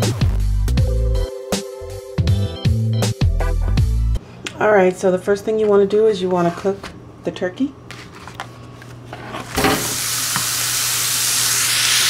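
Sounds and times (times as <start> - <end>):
meat sizzling in a skillet: 9.8 - 12.0.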